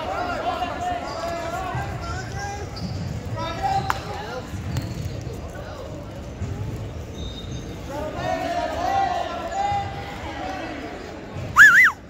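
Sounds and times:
people calling out in echoing gym: 0:07.1 - 0:12.0.

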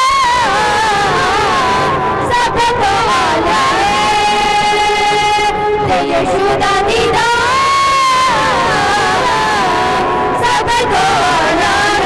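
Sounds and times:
group singing worship song: 0:00.0 - 0:12.0.

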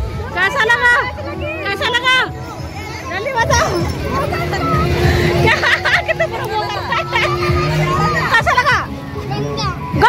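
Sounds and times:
children and adults chattering: 0:00.0 - 0:10.0
steady humming tone: 0:01.0 - 0:10.0.

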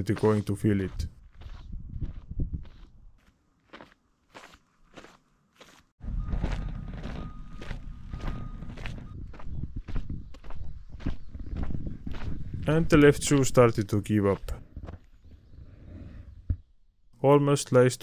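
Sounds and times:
footsteps on gravel: 0:00.0 - 0:15.1
footsteps on paved path: 0:00.0 - 0:15.2.

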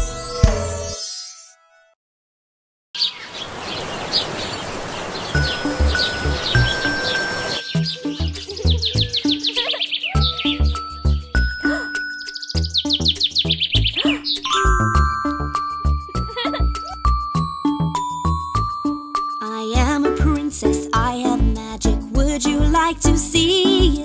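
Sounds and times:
birds chirping rapidly: 0:03.0 - 0:18.7
steady outdoor hiss: 0:03.1 - 0:10.2
light children's music: 0:05.4 - 0:24.0.

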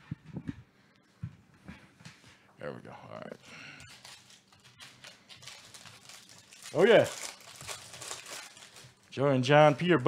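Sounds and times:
foil packs crinkling: 0:03.5 - 0:09.2.

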